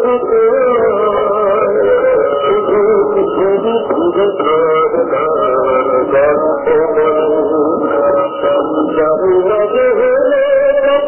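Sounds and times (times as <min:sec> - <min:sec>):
muffled song with instruments: 0:00.0 - 0:11.0.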